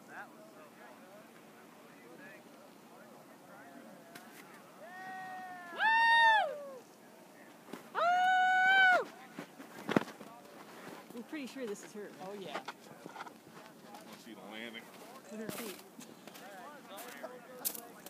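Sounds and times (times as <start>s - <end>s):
people shouting high calls: 4.8s - 6.9s, 8.0s - 9.1s.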